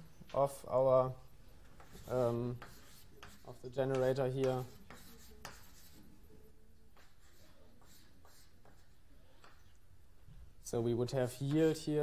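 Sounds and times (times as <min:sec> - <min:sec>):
chalk tapping and scratching: 0:01.6 - 0:09.8.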